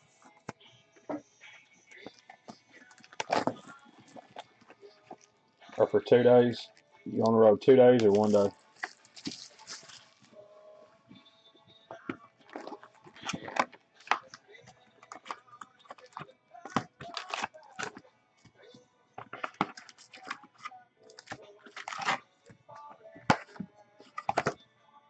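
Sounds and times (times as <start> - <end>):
foil wrappers crinkling: 2.8 - 5.8, 7.9 - 10.4, 12.5 - 14.4, 15.0 - 18.0, 19.2 - 22.2.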